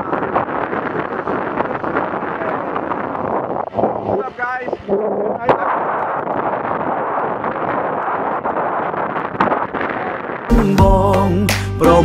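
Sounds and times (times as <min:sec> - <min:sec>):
wind buffeting microphone: 0:00.0 - 0:10.5.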